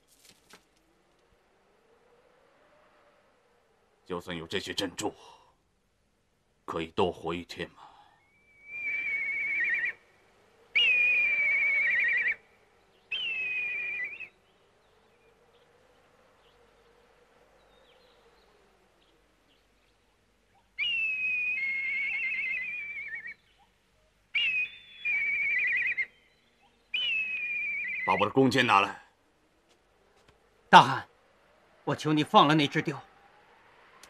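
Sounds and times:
eagle screeching: 0:10.8 - 0:12.4, 0:20.8 - 0:23.4, 0:24.4 - 0:28.4.

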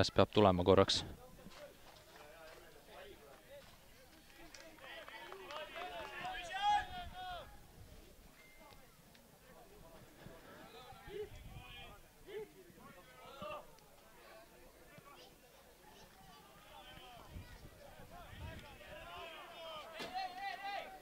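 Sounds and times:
quiet stadium ambience: 0:00.0 - 0:21.0
distant players calling out: 0:10.7 - 0:13.9.

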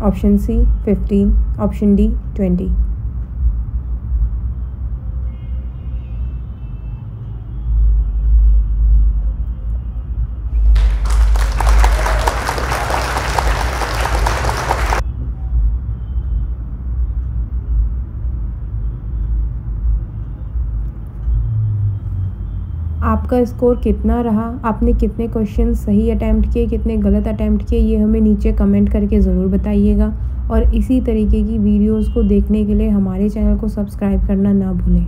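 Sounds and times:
low background rumble: 0:23.0 - 0:35.0.

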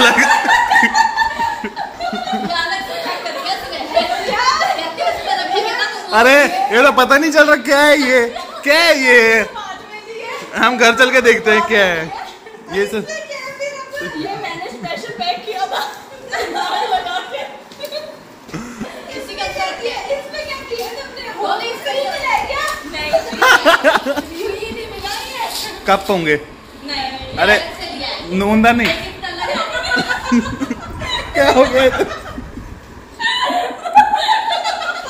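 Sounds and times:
woman laughing hard: 0:00.0 - 0:04.8, 0:18.5 - 0:19.2, 0:23.1 - 0:24.4, 0:29.4 - 0:35.0
women chattering: 0:00.0 - 0:06.7, 0:11.3 - 0:25.9, 0:29.0 - 0:32.3.

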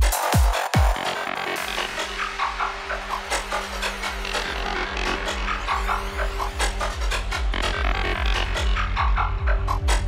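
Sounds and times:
steady kick drum: 0:00.0 - 0:01.0
rolling bassline: 0:00.0 - 0:10.0
busy synth effects: 0:01.2 - 0:09.9.

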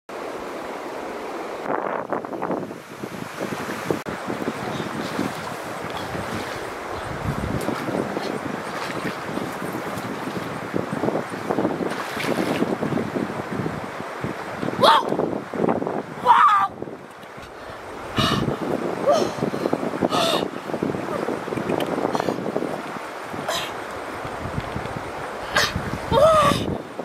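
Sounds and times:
stream water running over gravel: 0:00.2 - 0:16.2, 0:19.7 - 0:27.0.

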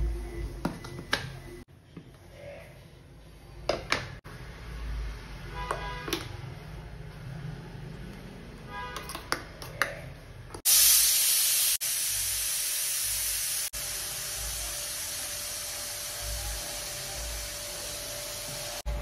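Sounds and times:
pressure cooker steam hissing: 0:10.6 - 0:18.9.

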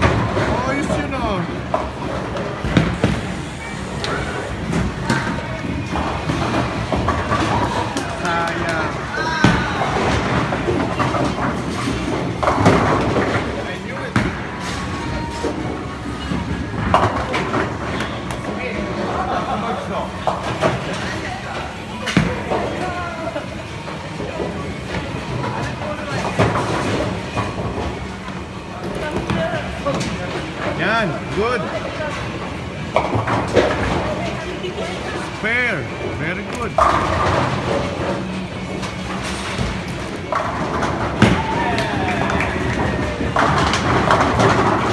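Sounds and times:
bowling ball rolling: 0:36.7 - 0:44.9
bowling pins crashing: 0:39.3 - 0:44.9.

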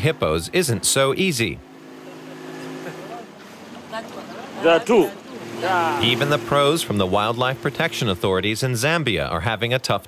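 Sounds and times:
motorboat engine running: 0:00.0 - 0:09.8
person's voice: 0:05.6 - 0:10.0.

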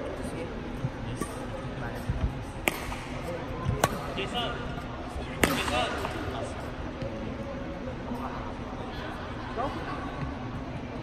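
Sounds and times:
racket striking shuttlecock: 0:02.6 - 0:04.1, 0:05.4 - 0:06.3.

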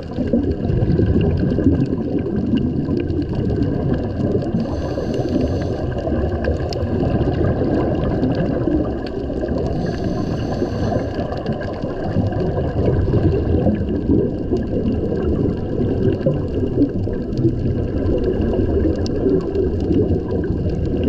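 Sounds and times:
underwater rumble of moving water: 0:00.0 - 0:21.0
scuba regulator breath hissing: 0:04.5 - 0:06.1, 0:09.6 - 0:11.5.

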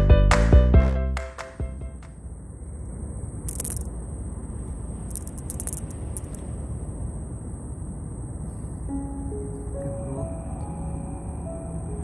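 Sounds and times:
low rumbling background noise: 0:01.6 - 0:12.0.

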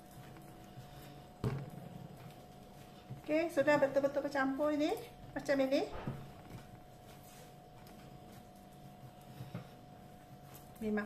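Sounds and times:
soft dough handling: 0:00.0 - 0:11.0.

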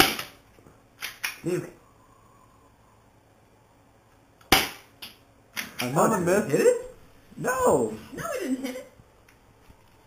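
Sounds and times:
airsoft pistol shot: 0:00.0 - 0:00.4, 0:04.5 - 0:04.9.

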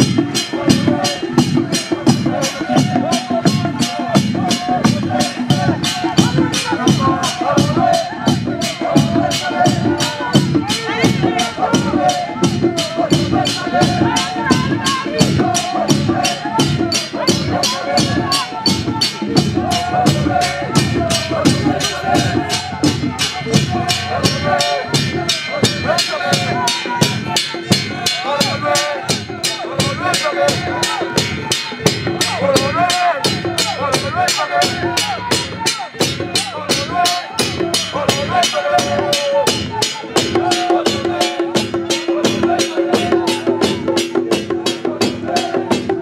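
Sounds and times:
crowd singing: 0:00.0 - 0:46.0
cymbals: 0:00.0 - 0:46.0
frame drums beaten with sticks: 0:00.0 - 0:46.0.

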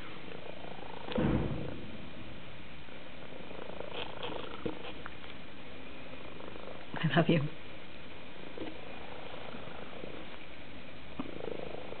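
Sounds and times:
cat purring: 0:00.0 - 0:12.0.

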